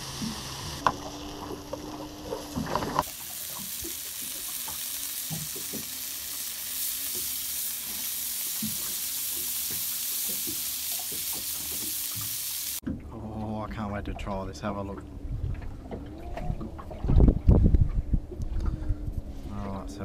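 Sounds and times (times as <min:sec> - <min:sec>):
fish sizzling in a pan: 0:00.0 - 0:12.8.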